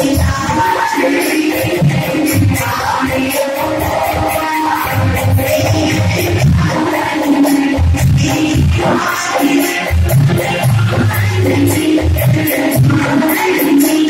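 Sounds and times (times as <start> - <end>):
person singing: 0.0 - 14.0.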